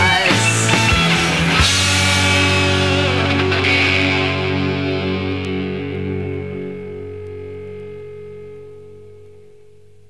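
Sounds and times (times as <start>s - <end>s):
rock band closing chord: 0.0s - 8.9s.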